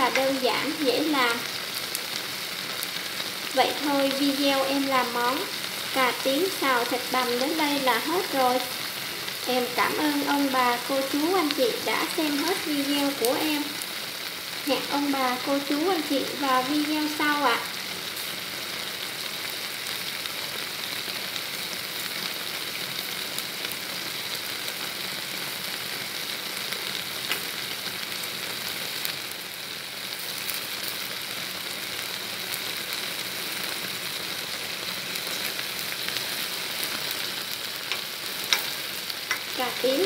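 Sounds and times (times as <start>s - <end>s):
food sizzling in a pot: 0.0s - 40.0s.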